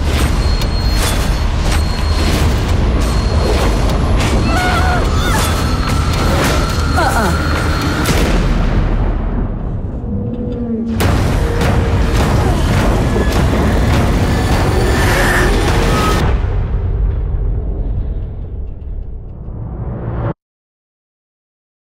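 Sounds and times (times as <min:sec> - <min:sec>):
dramatic music: 0:00.0 - 0:20.4
low rumble: 0:02.4 - 0:20.4
heavy booming impacts: 0:07.7 - 0:18.6.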